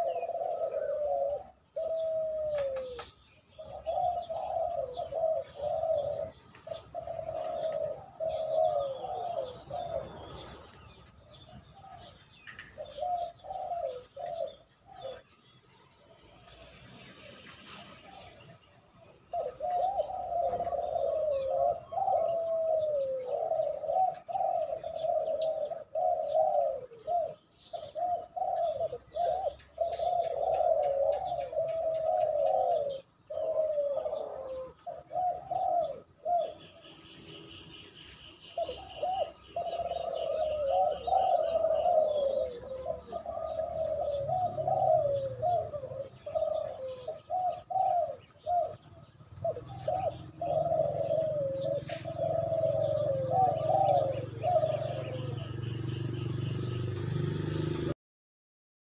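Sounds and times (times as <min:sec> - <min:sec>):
dove cooing: 0:00.0 - 0:58.0
faint high bird trill: 0:00.0 - 0:58.0.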